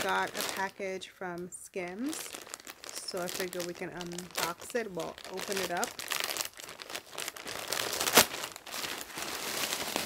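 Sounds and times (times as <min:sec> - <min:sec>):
plastic bag crinkling: 0:00.0 - 0:10.0
plastic mailer bag tearing: 0:02.0 - 0:10.0.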